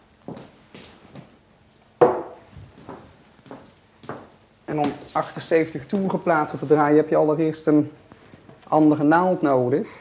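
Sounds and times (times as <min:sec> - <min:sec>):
footsteps: 0:00.3 - 0:01.4, 0:02.0 - 0:06.9.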